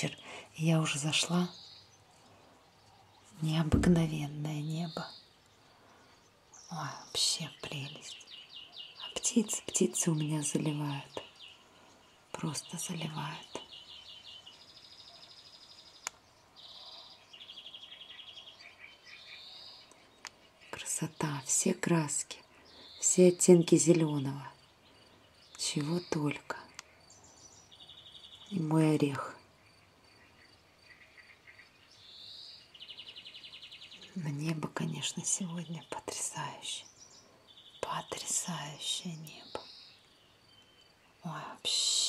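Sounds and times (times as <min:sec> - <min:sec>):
songbirds trilling: 0:00.0 - 0:42.0.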